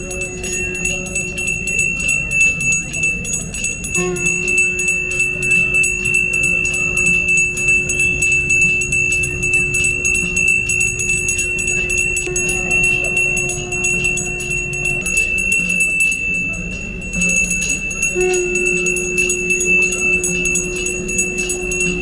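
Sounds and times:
hand bell ringing rapidly: 0.0s - 22.0s
steady low tone: 0.0s - 22.0s.

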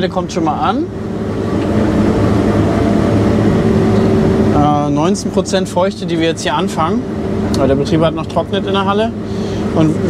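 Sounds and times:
combine harvester drone: 0.0s - 10.0s.

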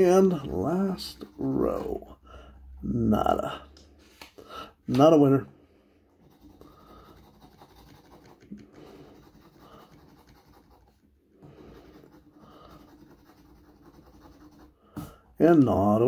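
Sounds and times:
coin scraping scratch ticket: 6.3s - 10.9s.

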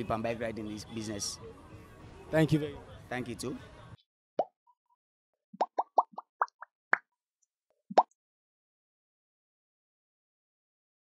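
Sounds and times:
cartoon plop sound effects: 5.6s - 6.7s.

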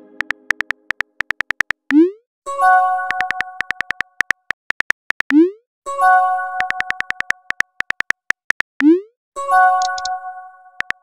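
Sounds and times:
phone keyboard clicks: 0.2s - 2.0s, 3.1s - 5.4s, 6.6s - 8.8s, 9.8s - 10.1s, 10.8s - 11.0s.

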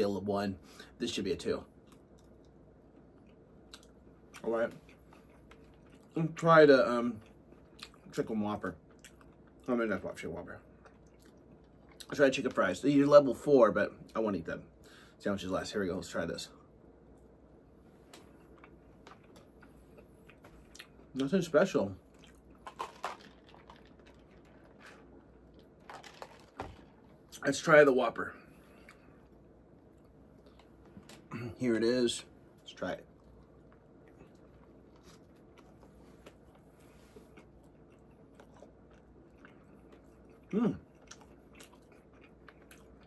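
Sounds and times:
low room hum: 0.0s - 43.0s
person chewing: 1.8s - 6.1s, 18.1s - 21.1s, 22.1s - 27.1s, 33.2s - 43.0s
man biting and chewing: 37.3s - 43.0s.

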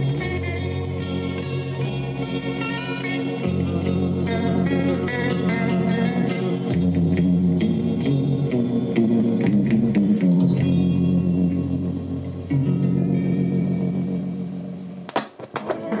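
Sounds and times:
pop song with guitar and bass: 0.0s - 13.8s.

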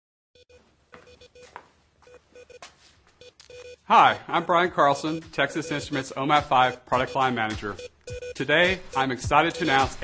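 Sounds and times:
short electronic beeps: 5.0s - 10.0s.

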